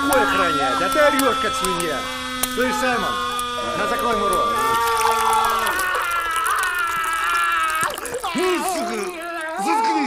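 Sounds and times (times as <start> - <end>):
person moaning muffled: 4.5 - 10.0.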